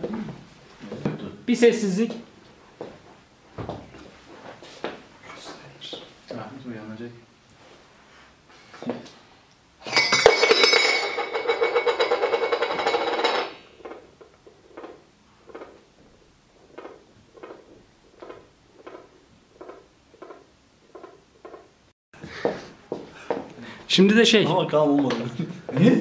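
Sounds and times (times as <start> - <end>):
metal bowl clattering on floor: 9.8 - 14.0.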